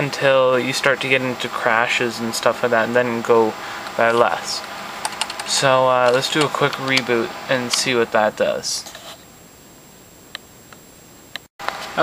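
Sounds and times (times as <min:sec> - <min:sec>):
faint room noise hiss: 0:00.0 - 0:12.0.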